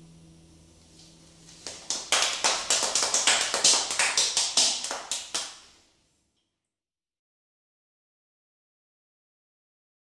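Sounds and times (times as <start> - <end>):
rapid sharp claps: 1.6 - 5.7.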